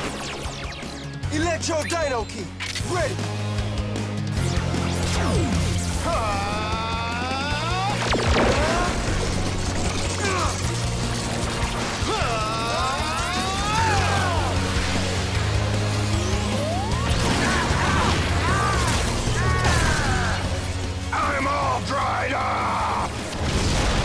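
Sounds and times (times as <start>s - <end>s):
action music with steady bass: 0.0s - 24.0s.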